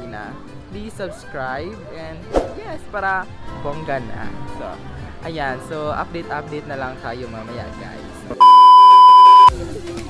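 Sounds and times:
faint background music: 0:00.0 - 0:08.5
electronic beep tone: 0:08.4 - 0:09.5.

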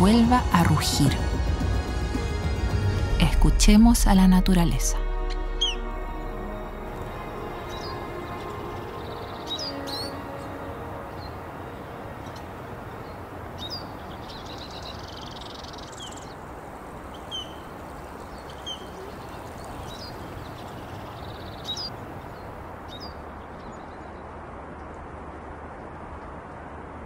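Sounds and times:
background music: 0:00.0 - 0:14.3
birds chirping: 0:04.1 - 0:24.4
flowing river water: 0:05.0 - 0:27.0.

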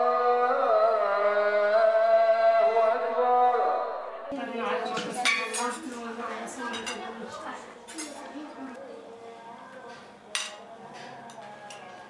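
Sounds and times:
plates glasses and cutlery clinking: 0:04.9 - 0:08.3, 0:09.9 - 0:12.0.

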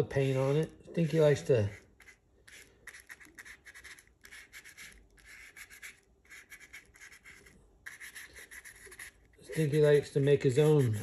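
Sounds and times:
paintbrush strokes on cardboard: 0:00.0 - 0:11.0.

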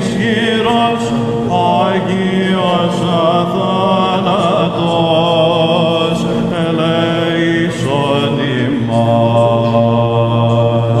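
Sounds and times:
men chanting slow melody: 0:00.0 - 0:11.0.

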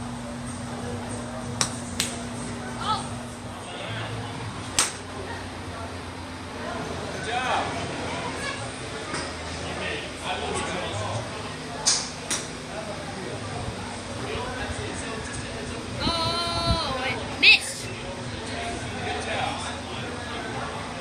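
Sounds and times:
golf clubs striking balls: 0:01.5 - 0:02.6, 0:04.7 - 0:05.1.

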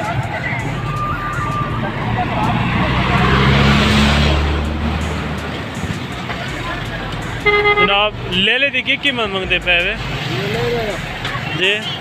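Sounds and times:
background voices: 0:00.0 - 0:08.3
vehicle passing by: 0:00.2 - 0:12.0.

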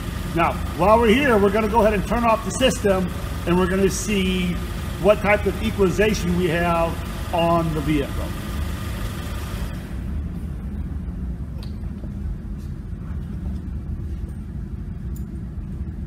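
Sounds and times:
air conditioning hiss: 0:00.0 - 0:16.0.

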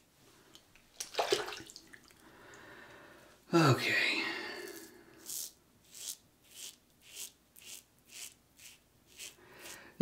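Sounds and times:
razor scraping stubble: 0:04.6 - 0:10.0.

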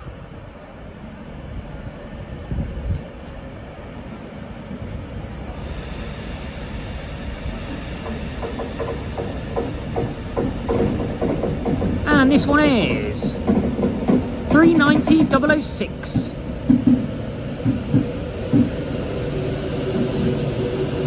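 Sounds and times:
electric train running noise: 0:05.1 - 0:21.0.

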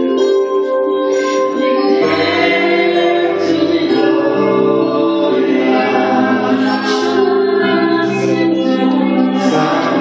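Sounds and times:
voices singing long held notes: 0:01.3 - 0:10.0
woman singing worship song: 0:01.5 - 0:10.0.

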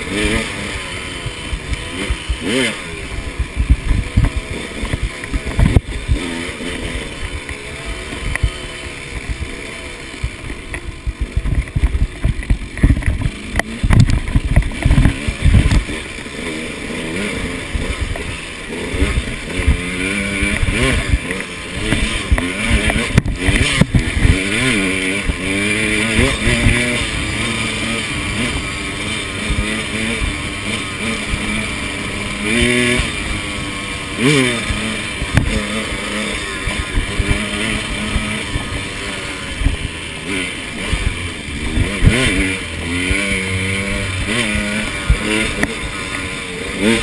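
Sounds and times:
dirt bike engine revving: 0:00.0 - 0:47.0
bike knocking against rocks: 0:10.2 - 0:16.0.

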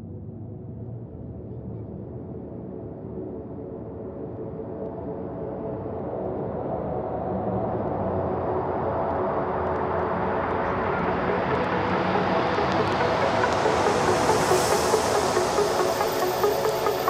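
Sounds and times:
electronic music build-up: 0:09.2 - 0:17.0.

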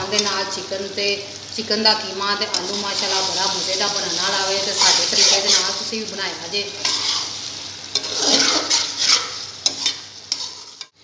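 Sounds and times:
oil sizzling: 0:00.0 - 0:11.0
spoon scraping metal pot: 0:04.7 - 0:05.8, 0:06.8 - 0:11.0.

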